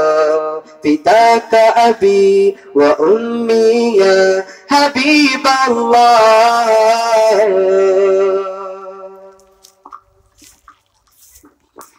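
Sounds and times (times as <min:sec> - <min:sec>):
man singing through pa system: 0:00.0 - 0:09.3.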